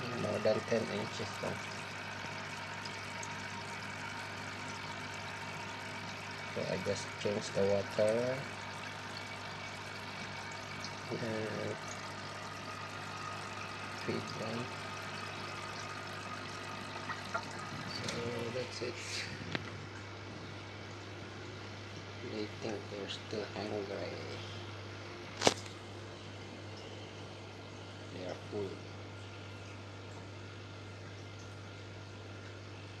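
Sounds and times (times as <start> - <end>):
water hissing in fish tank: 0.0 - 19.6
constant low hum: 0.0 - 33.0.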